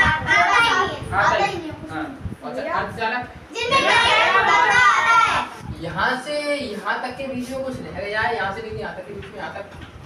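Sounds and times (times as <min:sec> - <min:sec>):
young voices talking: 0:00.0 - 0:02.2, 0:03.5 - 0:05.7.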